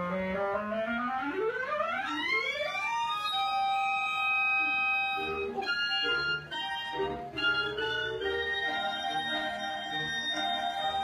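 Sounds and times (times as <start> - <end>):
clarinets playing glissando: 3.3 - 11.0.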